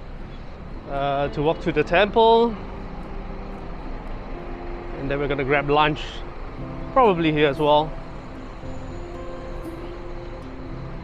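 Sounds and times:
city road traffic rumble: 0.0s - 11.0s.

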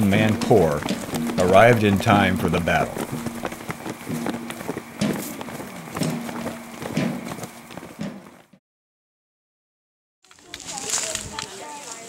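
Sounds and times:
footsteps through long grass: 0.0s - 8.4s, 10.2s - 12.0s.

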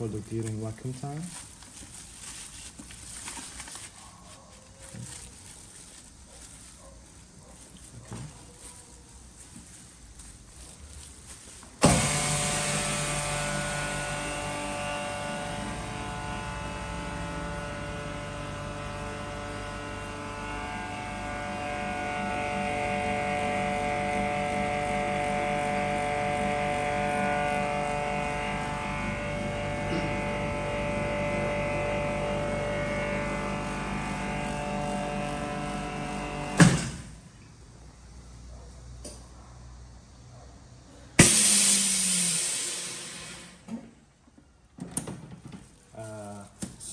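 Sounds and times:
vacuum pump droning hum: 4.9s - 37.4s, 41.2s - 44.0s
sharp burst: 41.2s - 43.6s.

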